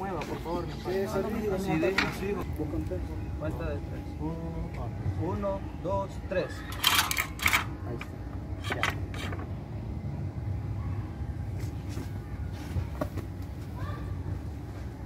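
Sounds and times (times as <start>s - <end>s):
low voices: 0.0s - 14.6s
low background rumble: 0.9s - 15.0s.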